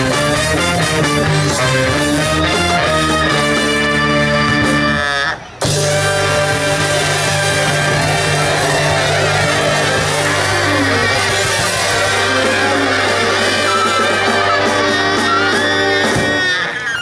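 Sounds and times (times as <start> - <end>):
live ska band playing: 0.0 - 17.0.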